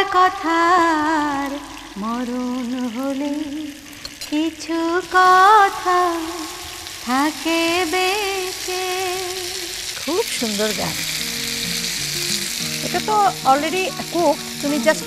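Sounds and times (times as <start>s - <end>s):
food sizzling in oil: 0.0s - 15.0s
music with held notes: 11.0s - 15.0s.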